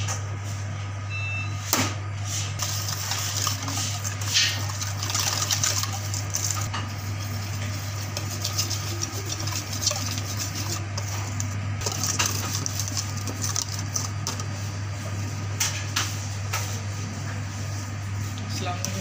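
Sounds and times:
steady low hum: 0.0s - 19.0s
whisk scraping a metal bowl: 2.3s - 15.2s.

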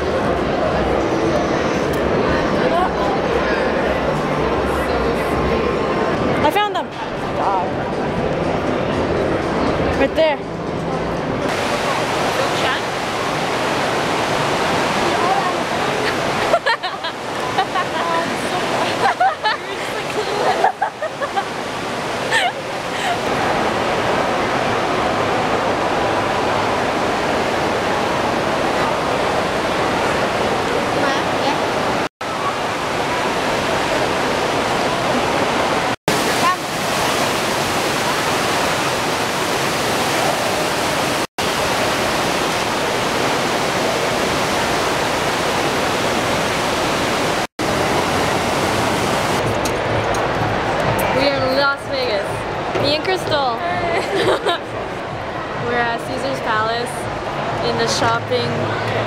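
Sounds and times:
fountain water splashing into basin: 11.5s - 49.5s.

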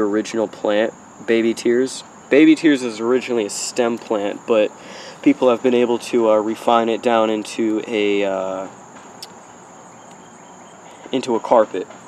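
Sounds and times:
insects trilling: 0.0s - 12.0s.

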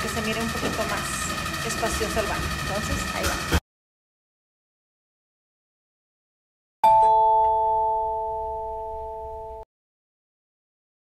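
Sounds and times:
bell-like chime: 6.8s - 9.6s.

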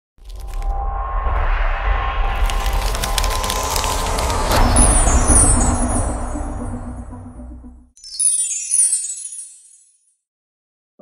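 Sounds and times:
deep rumble: 0.2s - 8.0s
rising wash of noise and crackles: 0.5s - 6.4s
impact hit: 0.6s - 7.9s.

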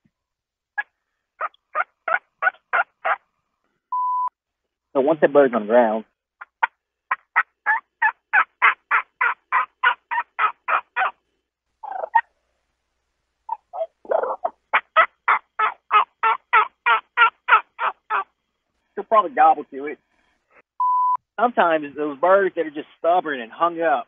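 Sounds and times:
man imitating turkey yelps: 6.4s - 11.2s, 13.5s - 18.3s.

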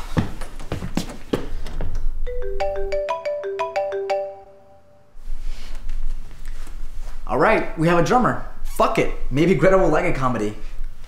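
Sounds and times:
smartphone ringtone melody: 2.3s - 5.1s.

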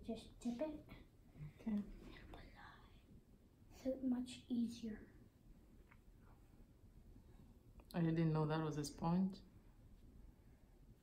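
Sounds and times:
person whispering: 1.6s - 3.1s.

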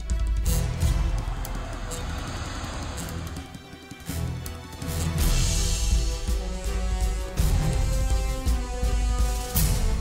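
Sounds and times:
rushing whooshing noise: 0.7s - 4.0s.

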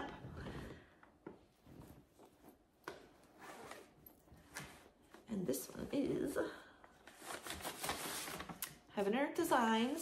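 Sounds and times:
fabric rustling: 1.3s - 5.3s.

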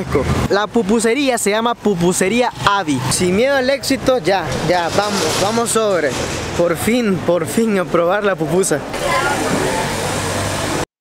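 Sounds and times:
voices: 0.0s - 10.4s
street traffic: 0.0s - 10.9s.

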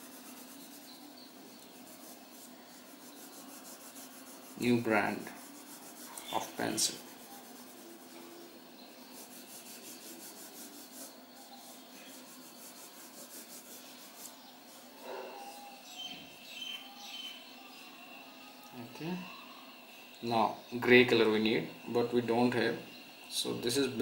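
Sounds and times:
pencil scratching on paper: 0.0s - 16.5s.

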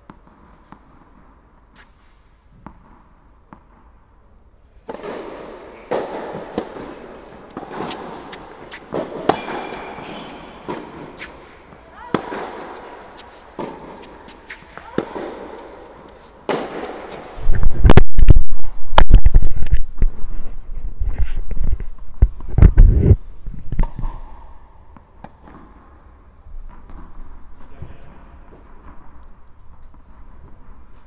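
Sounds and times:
tennis ball struck by rackets: 4.8s - 18.4s
microphone handling rumble: 17.4s - 24.1s.

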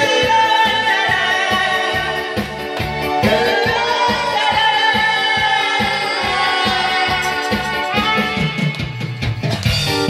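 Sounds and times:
amplified singing: 0.0s - 8.6s
backing music with steady beat: 0.0s - 10.0s.

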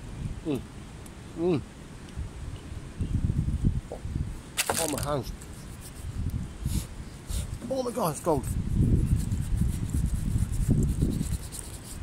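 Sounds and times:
hands rubbing together: 4.8s - 7.6s, 8.3s - 12.0s.

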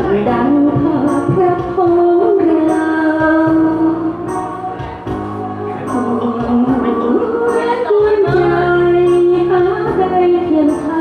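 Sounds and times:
woman singing: 0.0s - 4.7s, 5.8s - 11.0s
karaoke backing track: 0.0s - 11.0s.

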